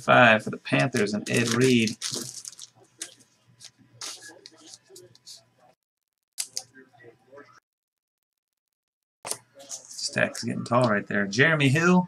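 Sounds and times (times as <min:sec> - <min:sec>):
cards rustling and sliding: 0:00.8 - 0:05.4.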